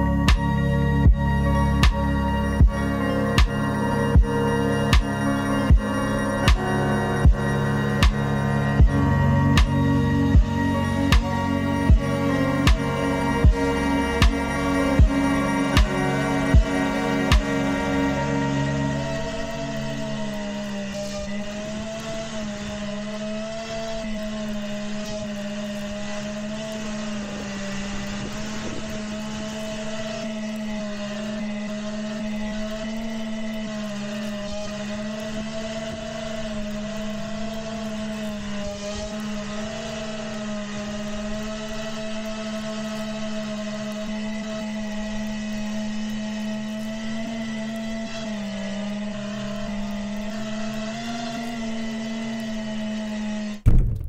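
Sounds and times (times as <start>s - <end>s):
drone propellers humming: 0.0s - 54.0s.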